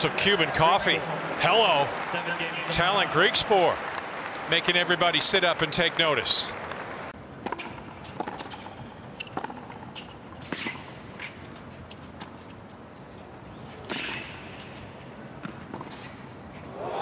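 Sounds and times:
racquets striking tennis ball: 6.6 - 12.4, 13.8 - 16.2.

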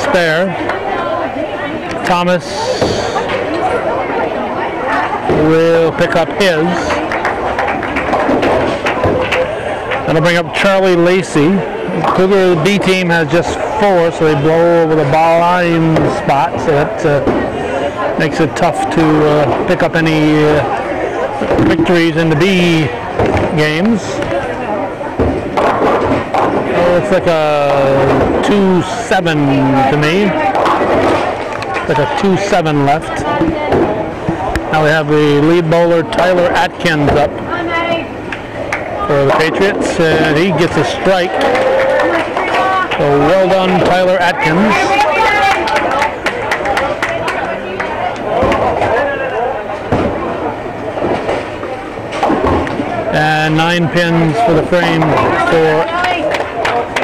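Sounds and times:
crowd chatter: 0.0 - 57.0
rumble of other bowling lanes: 0.0 - 57.0
bowling ball rolling on lane: 3.2 - 10.6
bowling pins crashing: 5.2 - 12.6, 19.3 - 35.3, 36.0 - 45.6, 48.0 - 49.1, 49.7 - 57.0.

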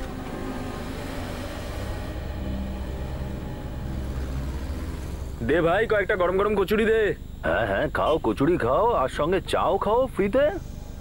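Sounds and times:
road noise: 0.0 - 6.1.

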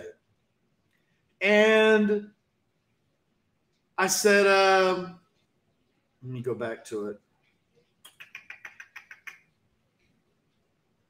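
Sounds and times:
computer clicking: 8.0 - 10.7.

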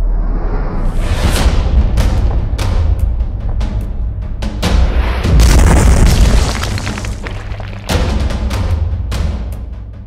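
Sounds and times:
boom sound effect: 5.3 - 7.8.

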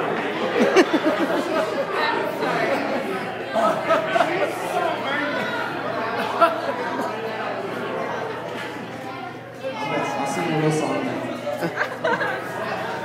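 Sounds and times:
chatter of many people: 0.0 - 13.0.

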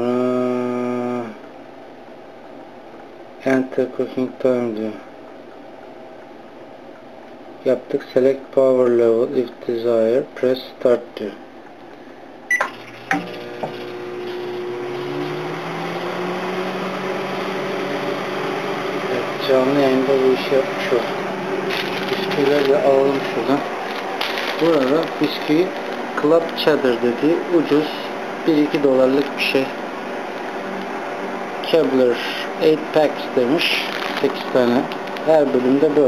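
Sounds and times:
microwave oven humming: 0.0 - 36.0.

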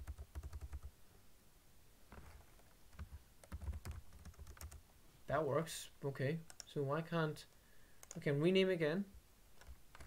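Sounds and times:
typing on computer keyboard: 0.0 - 0.9, 2.9 - 4.8, 8.0 - 8.2, 9.6 - 10.0.

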